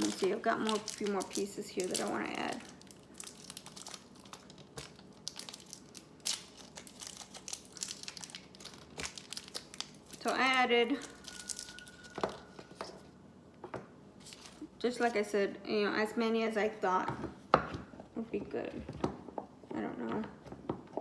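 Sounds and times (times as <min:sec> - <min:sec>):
plastic wrappers crinkling: 0:00.0 - 0:13.1.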